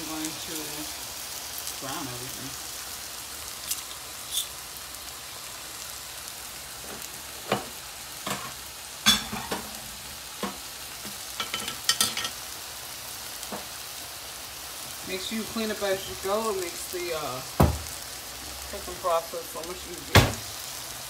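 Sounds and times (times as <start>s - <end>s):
food sizzling in a frying pan: 0.0s - 21.0s.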